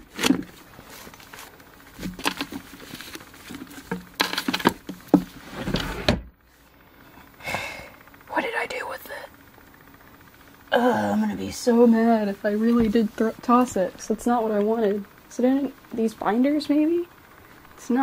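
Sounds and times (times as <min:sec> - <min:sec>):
books knocking and rustling on shelf: 0:00.0 - 0:06.3.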